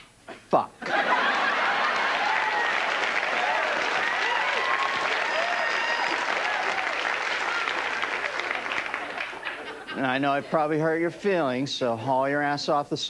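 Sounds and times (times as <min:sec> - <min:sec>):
audience applauding: 0:00.8 - 0:10.2
whoops and shouts: 0:02.1 - 0:07.9.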